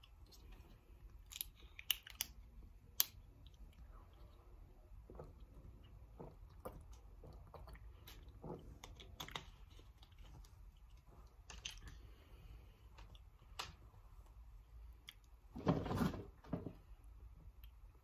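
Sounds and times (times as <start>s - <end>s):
low room hum: 0.0s - 18.0s.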